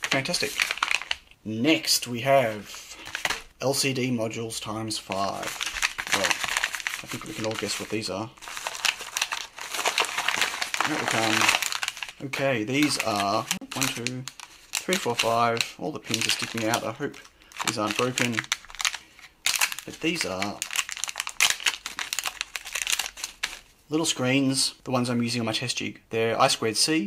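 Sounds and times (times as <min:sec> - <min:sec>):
padded mailer crinkling: 0:00.0 - 0:01.2, 0:03.0 - 0:03.4, 0:05.1 - 0:23.6.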